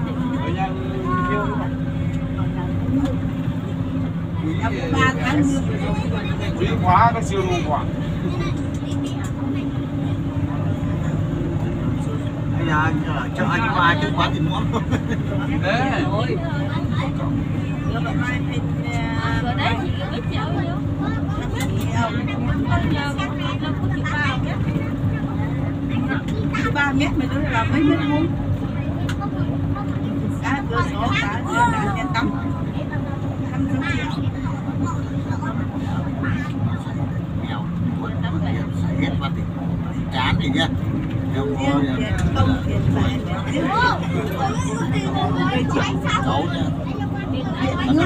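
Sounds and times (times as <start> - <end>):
passengers chatting: 0.0 - 48.0
vehicle engine drone and road noise: 0.0 - 48.0
voices talking: 0.0 - 48.0.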